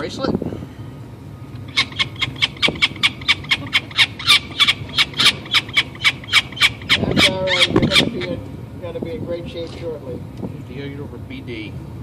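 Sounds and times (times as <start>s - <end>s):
falcon calling sharp notes: 1.7s - 8.4s.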